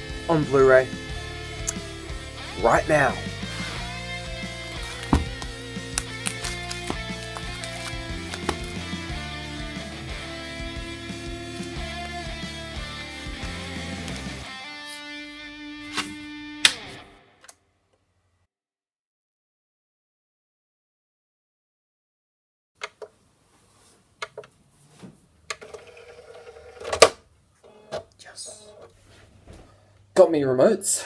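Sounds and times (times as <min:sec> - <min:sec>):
steady bass: 0:00.0 - 0:14.5
electric guitar music: 0:00.0 - 0:17.4.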